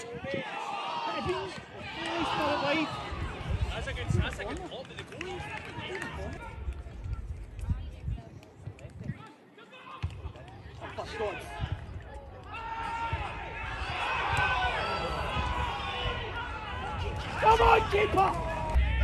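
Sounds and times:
low rumble: 18.4s - 19.0s.

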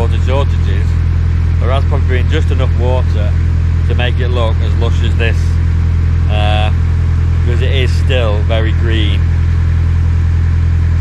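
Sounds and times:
diesel boat engine humming: 0.0s - 11.0s.

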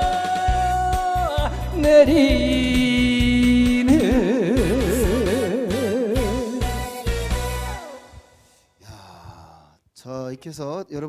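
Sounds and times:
man's breathy vocal sound: 8.3s - 9.8s
man talking: 8.8s - 11.0s.

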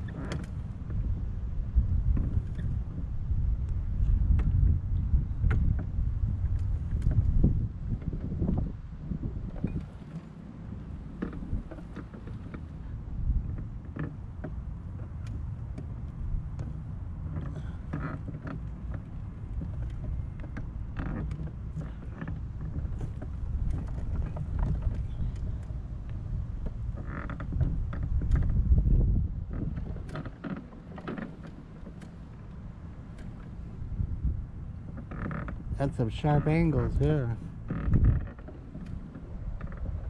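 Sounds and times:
wheelchair frame creaking and rattling: 0.0s - 1.2s, 6.5s - 40.0s
wheelchair motor rumbling: 0.0s - 40.0s.

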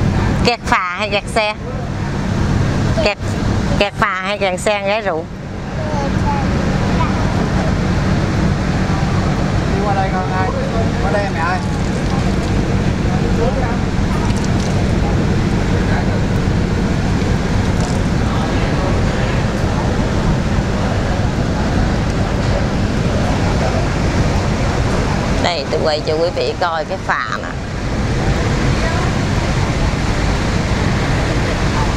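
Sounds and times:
diesel engine droning: 0.0s - 31.9s
faint passengers' voices: 0.0s - 31.9s.

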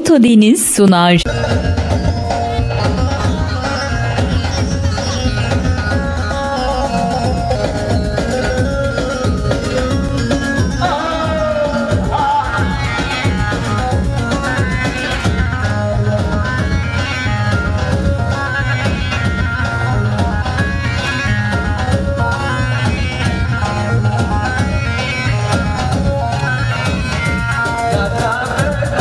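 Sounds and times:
dance band music: 0.0s - 29.0s
steady drum beat: 7.2s - 29.0s.

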